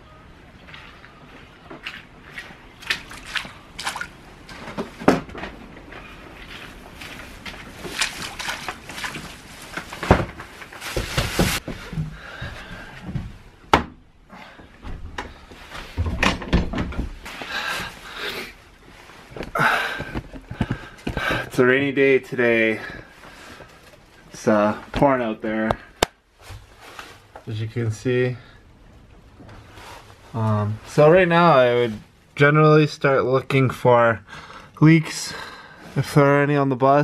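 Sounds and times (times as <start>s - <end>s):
splashing steps in rubber boots: 1.8s - 4.6s, 6.9s - 9.9s.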